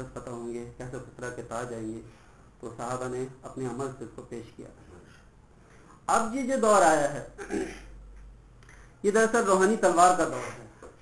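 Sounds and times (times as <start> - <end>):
man clearing his throat: 7.4 - 8.0.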